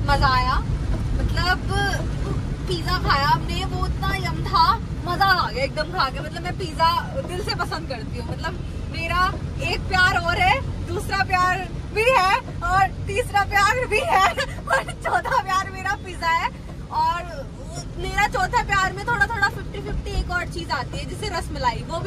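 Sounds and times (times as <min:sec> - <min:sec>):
woman talking: 0:00.0 - 0:00.6, 0:01.2 - 0:22.0
car cabin rumble: 0:00.0 - 0:22.0.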